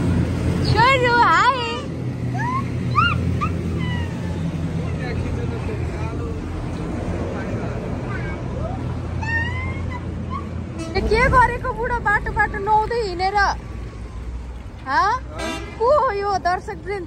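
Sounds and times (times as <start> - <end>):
child squealing: 2.3 - 4.5, 8.0 - 10.7.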